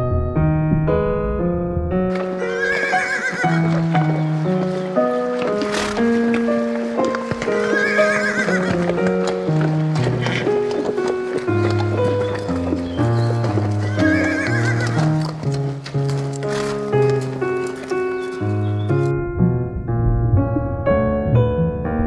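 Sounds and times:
horse whinnying: 2.1 - 4.2, 7.3 - 9.3, 9.9 - 15.4.

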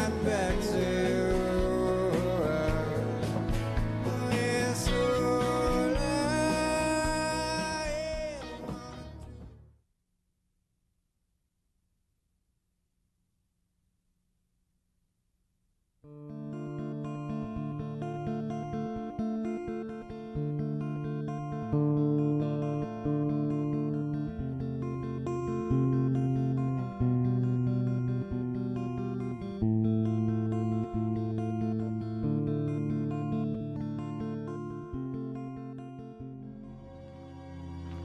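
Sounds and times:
plucked acoustic guitar: 0.0 - 9.6, 16.3 - 38.0.

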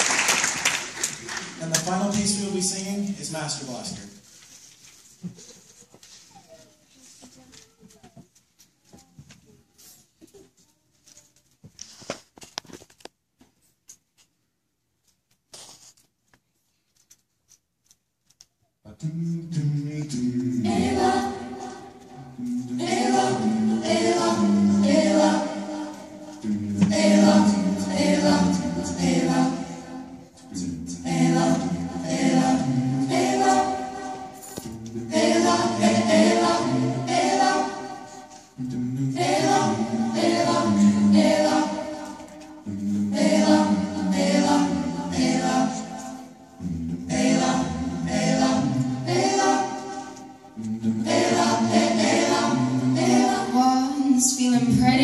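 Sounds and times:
vocal ensemble singing a cappella: 18.9 - 55.0.

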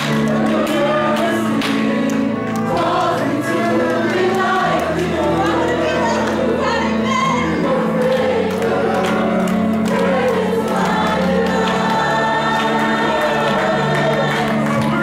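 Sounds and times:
choir singing gospel song: 0.0 - 15.0
instrumental accompaniment: 0.0 - 15.0.

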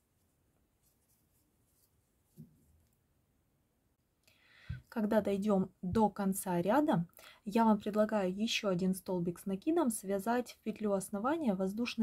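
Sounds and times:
woman breathing: 4.2 - 4.9, 7.2 - 7.5
woman speaking: 4.9 - 12.0.

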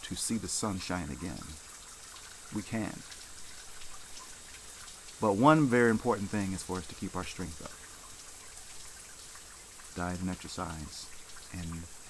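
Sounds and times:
water dripping and splashing: 0.0 - 12.0.

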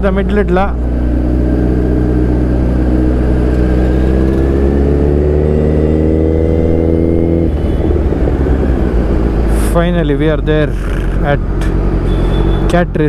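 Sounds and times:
motorcycle engine revving: 0.0 - 12.8
low rumble of riding noise: 0.0 - 13.0.

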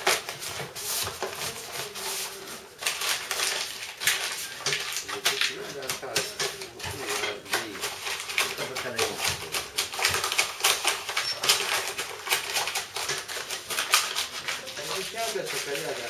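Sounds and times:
paper and cardboard crackling: 0.0 - 16.0.

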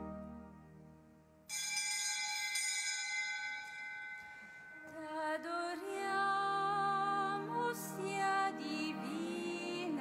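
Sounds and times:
bright bell stroke ringing: 1.5 - 5.1.

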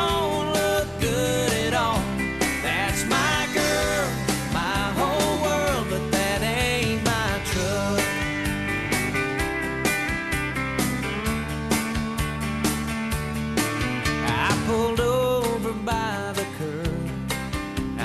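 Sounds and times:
drums keeping steady beat: 0.0 - 18.0
guitars: 0.0 - 18.0.

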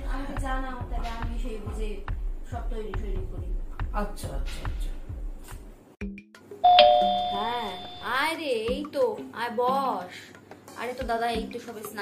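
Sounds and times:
two-note doorbell chime: 6.6 - 8.1.

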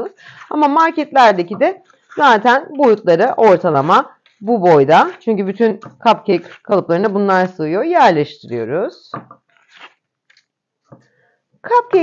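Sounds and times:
paper liners rustling: 1.8 - 2.5, 9.5 - 10.5.

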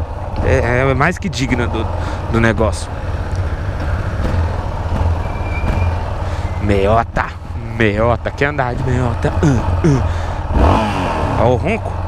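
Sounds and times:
motorcycle engine at low revs: 0.0 - 12.0.

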